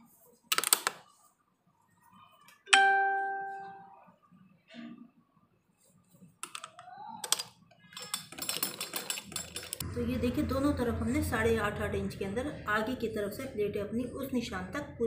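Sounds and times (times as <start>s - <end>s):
bell-like ring: 2.8s - 3.9s.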